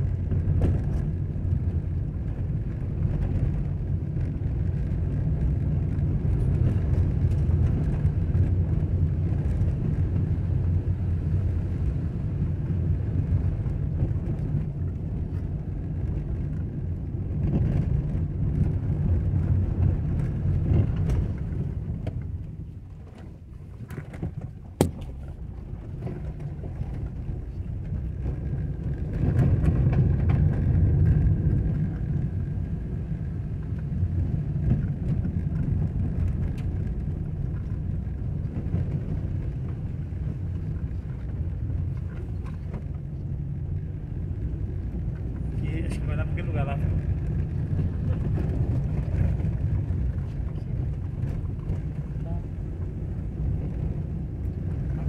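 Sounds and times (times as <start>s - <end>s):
vehicle rumbling on dirt road: 0.0s - 55.0s.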